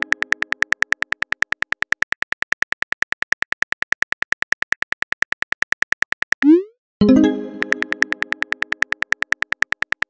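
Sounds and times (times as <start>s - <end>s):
keyboard clicks: 0.0s - 2.3s, 6.4s - 10.0s.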